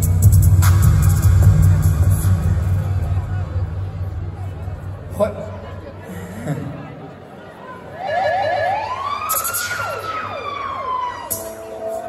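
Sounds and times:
sustained music chords: 0:00.0 - 0:06.1
siren sound effect: 0:08.0 - 0:11.6.

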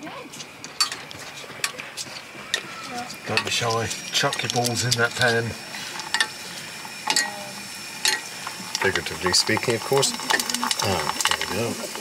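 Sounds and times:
frying in hot oil: 0:00.0 - 0:12.0.

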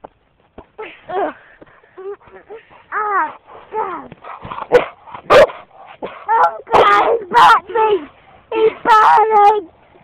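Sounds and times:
dog barking: 0:04.6 - 0:07.6.

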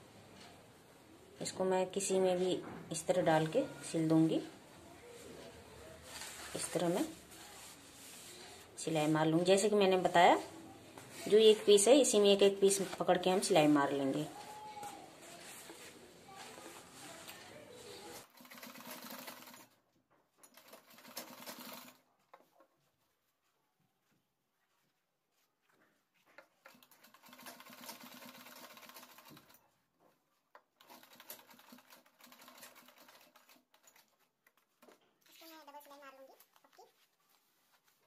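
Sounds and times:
sewing machine stitching: 0:18.1 - 0:19.8, 0:20.4 - 0:22.0, 0:26.6 - 0:29.6, 0:30.8 - 0:35.4.

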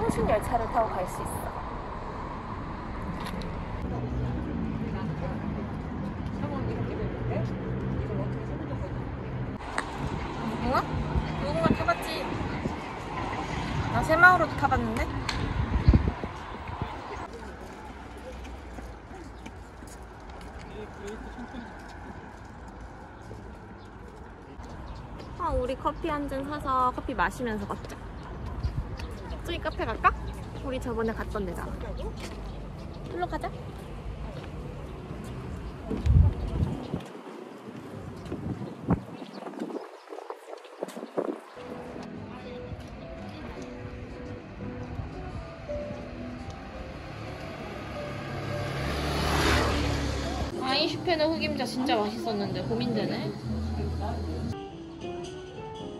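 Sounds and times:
wind rumbling on microphone: 0:00.0 - 0:26.1, 0:27.1 - 0:30.6, 0:33.7 - 0:42.1
distant traffic hum: 0:00.0 - 0:54.7
motor vehicle passing by: 0:45.8 - 0:54.6.

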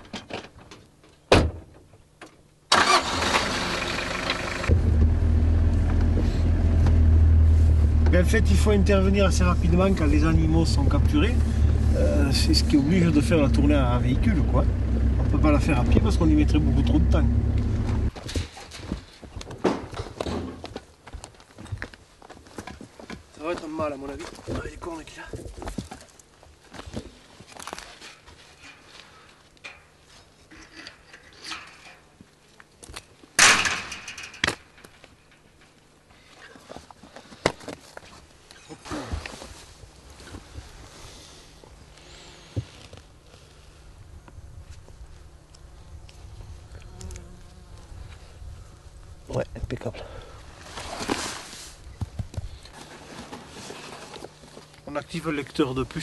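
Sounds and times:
loud rough rush of noise: 0:07.4 - 0:18.1.

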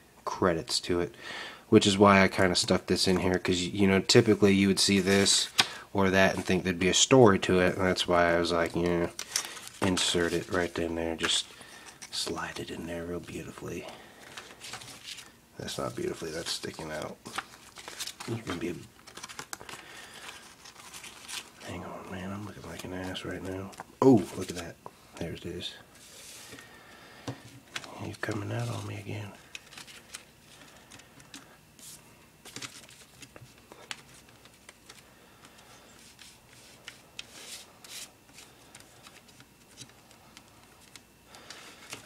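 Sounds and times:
paper rustling: 0:08.4 - 0:13.4, 0:14.1 - 0:24.7, 0:27.6 - 0:42.0.

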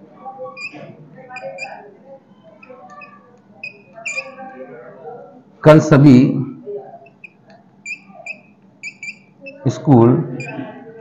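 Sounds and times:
chalk squeaking on blackboard: 0:00.6 - 0:01.8, 0:02.6 - 0:04.5, 0:07.0 - 0:09.6, 0:10.4 - 0:11.0.

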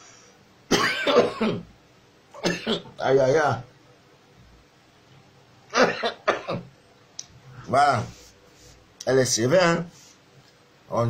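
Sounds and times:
man coughing: 0:00.7 - 0:01.7, 0:02.4 - 0:02.9, 0:05.7 - 0:06.7.

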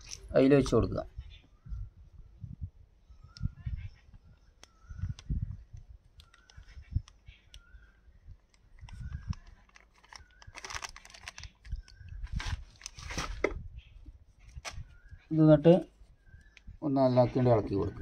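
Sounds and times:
small clicks: 0:04.4 - 0:07.7
plastic bag crinkling: 0:08.8 - 0:13.5.

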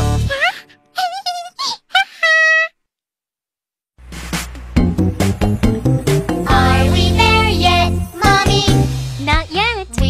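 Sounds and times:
squeaky cartoon-voice sounds: 0:00.3 - 0:02.8
rising glide: 0:04.0 - 0:08.4
children's song: 0:05.8 - 0:10.0.

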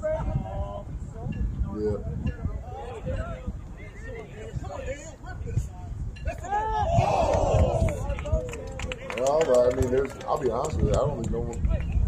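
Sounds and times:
men shouting: 0:06.3 - 0:08.1.

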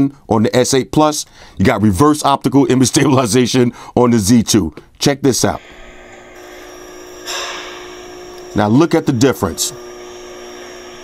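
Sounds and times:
steady hum with high whine: 0:04.6 - 0:11.0.

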